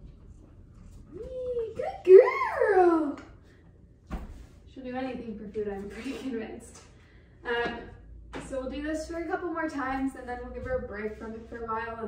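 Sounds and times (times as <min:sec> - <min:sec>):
woman speaking: 0:01.1 - 0:03.3, 0:04.7 - 0:12.0.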